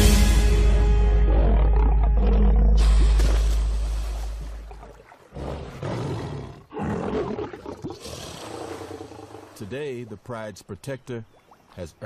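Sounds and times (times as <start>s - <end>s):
lion growling: 1.2s - 3.3s, 4.7s - 9.6s.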